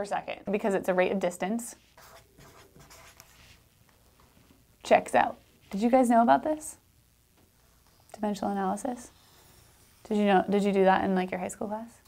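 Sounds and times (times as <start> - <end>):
marker pen writing on paper: 1.8 - 3.6.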